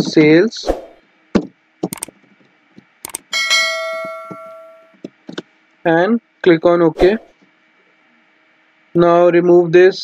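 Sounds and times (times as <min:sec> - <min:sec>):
short clicks: 0:03.0 - 0:03.3
bell-like ding chime: 0:03.3 - 0:05.0.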